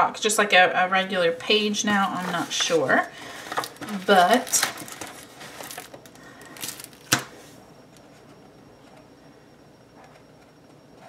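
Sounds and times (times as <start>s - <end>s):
paper rustling: 1.8s - 7.4s.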